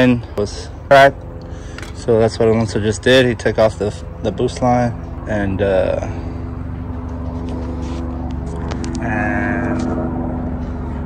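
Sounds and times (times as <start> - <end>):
steady mechanical drone: 0.0 - 11.0.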